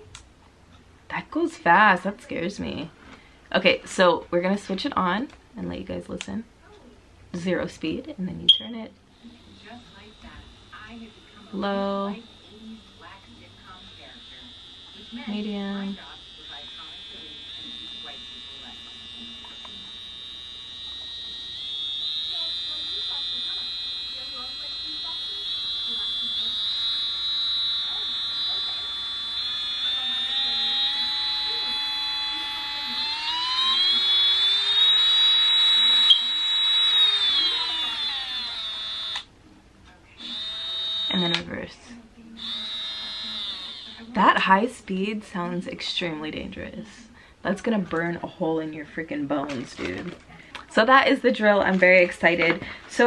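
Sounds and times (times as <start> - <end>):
nail drill motor whining: 9.1 - 39.3, 40.2 - 41.8, 42.4 - 44.2.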